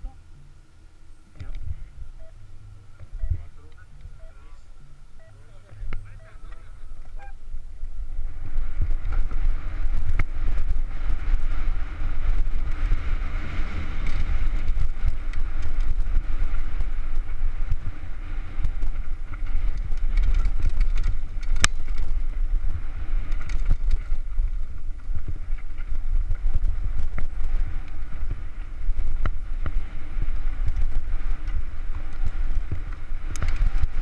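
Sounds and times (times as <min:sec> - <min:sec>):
wind buffeting camera: 0:00.0 - 0:34.0
mountain bike rattling over rocks: 0:08.7 - 0:34.0.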